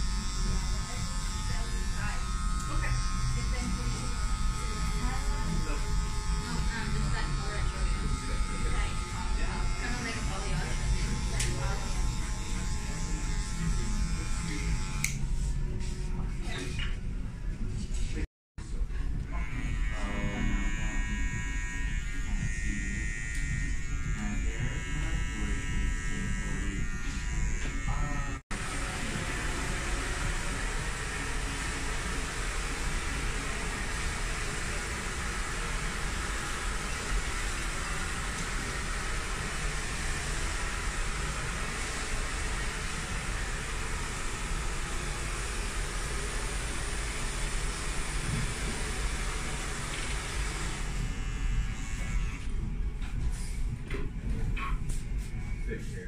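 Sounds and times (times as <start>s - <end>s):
hair clippers buzzing: 0.0s - 15.3s, 19.3s - 52.7s.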